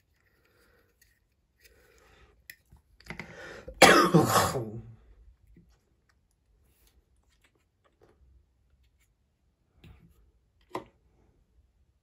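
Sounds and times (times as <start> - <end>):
breathing: 0.2 - 2.5, 3.1 - 3.8
man coughing: 3.8 - 4.9.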